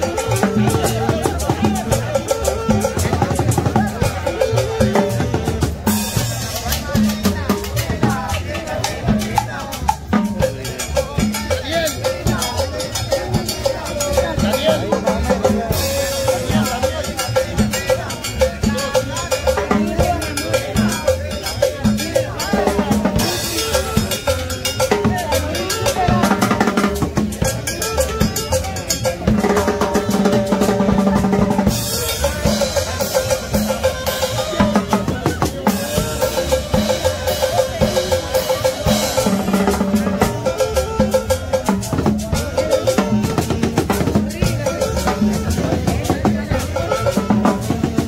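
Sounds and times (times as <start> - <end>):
cowbell: 0.0 - 48.0
drum kit beat: 0.0 - 48.0
latin dance band playing: 0.0 - 48.0.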